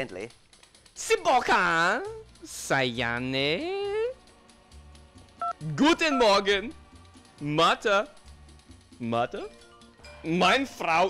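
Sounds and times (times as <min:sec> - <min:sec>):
faint background music: 0:00.0 - 0:11.0
two-tone keypad beep: 0:05.4 - 0:06.4.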